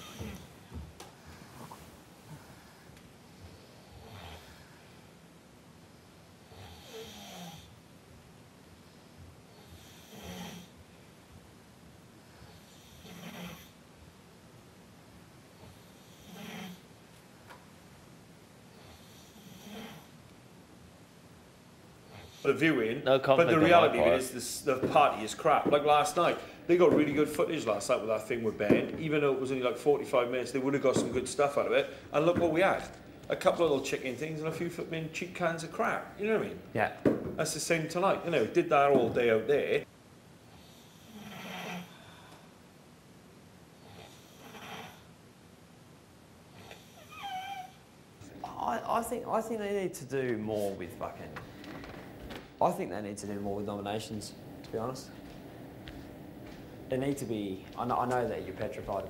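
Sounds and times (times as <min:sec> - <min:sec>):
person snoring faintly: 0:00.0 - 0:00.6, 0:09.6 - 0:10.8, 0:12.5 - 0:13.8, 0:15.6 - 0:16.8, 0:18.8 - 0:20.1, 0:40.6 - 0:42.4.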